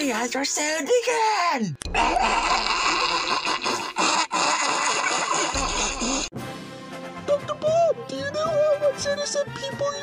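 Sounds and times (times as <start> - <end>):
harsh raspy evil laugh: 1.9 - 6.3.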